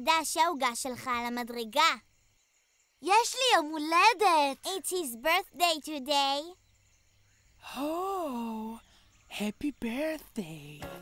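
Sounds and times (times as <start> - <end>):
cartoon voice speaking: 0.0 - 2.0, 3.0 - 6.6.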